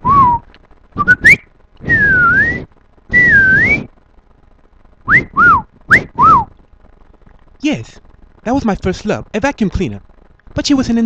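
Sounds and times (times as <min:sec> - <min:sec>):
man whistling chirps and glides: 0:00.0 - 0:03.9, 0:05.1 - 0:06.5.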